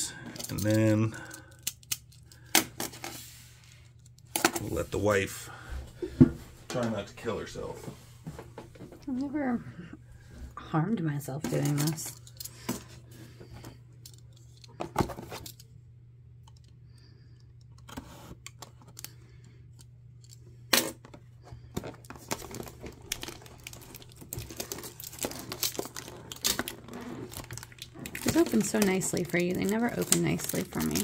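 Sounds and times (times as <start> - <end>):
steady low hum: 0.0 - 31.0
crinkling: 20.1 - 31.0.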